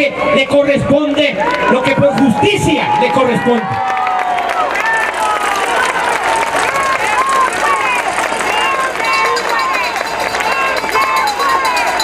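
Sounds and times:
crowd clapping: 0.8s - 12.0s.

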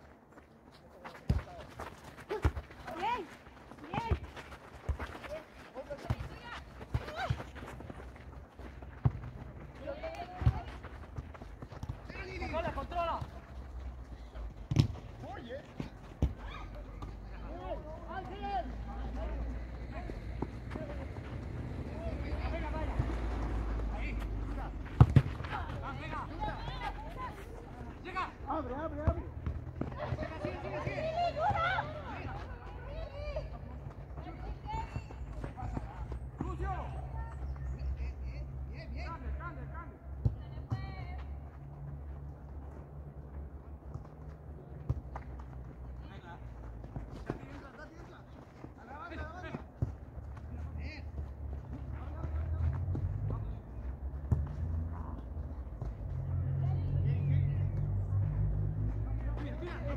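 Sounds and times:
distant shouts of players: 16.2s - 21.0s.

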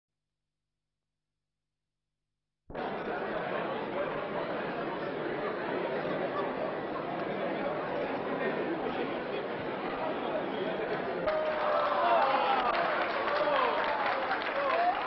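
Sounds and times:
crowd chatter in a large hall: 2.7s - 15.0s.

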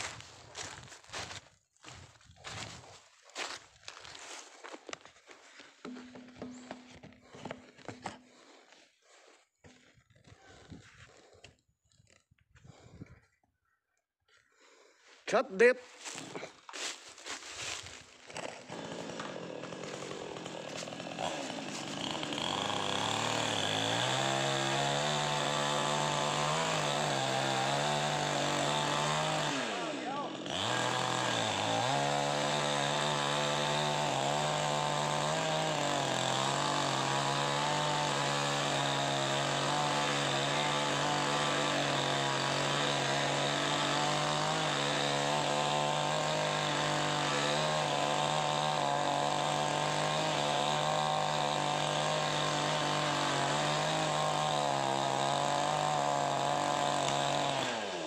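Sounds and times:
chainsaw running: 0.0s - 10.0s, 16.0s - 58.0s.

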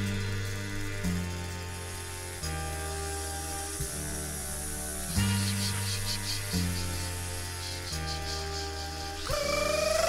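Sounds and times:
sustained chords over heavy bass: 0.0s - 10.0s.

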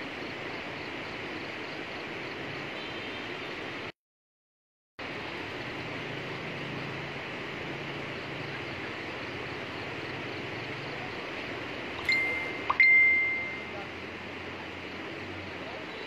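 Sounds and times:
high ringing chime: 12.0s - 13.8s.

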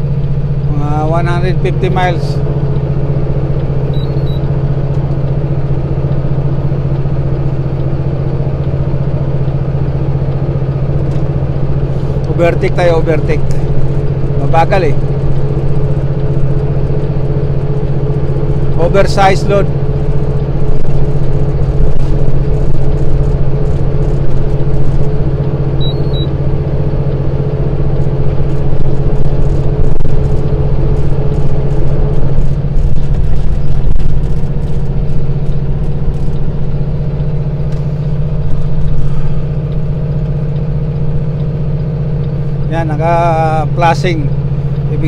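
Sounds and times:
diesel engine droning: 0.0s - 45.0s.

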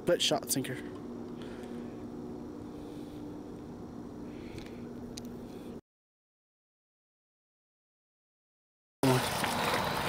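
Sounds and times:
steady low hum: 0.0s - 5.8s.

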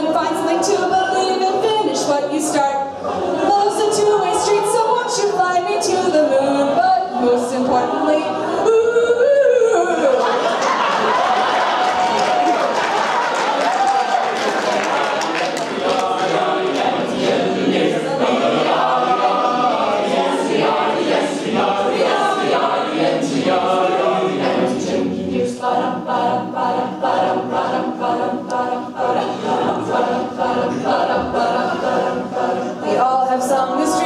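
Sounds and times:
a cappella group singing: 0.0s - 34.0s.

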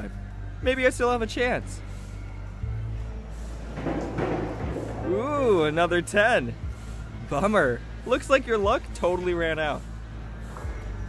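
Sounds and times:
low arcade hum: 0.0s - 11.0s
ball rolling up a lane: 3.6s - 5.2s.

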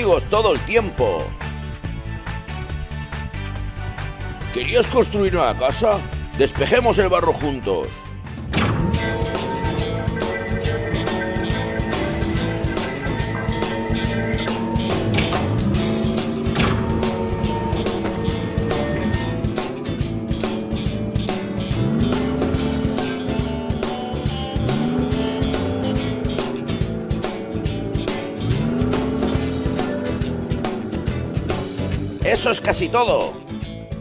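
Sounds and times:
background music with steady beat: 0.0s - 34.0s.

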